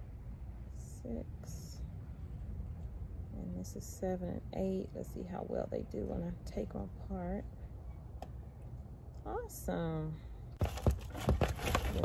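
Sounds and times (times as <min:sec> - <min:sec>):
plastic cups crinkling: 0:10.6 - 0:12.0.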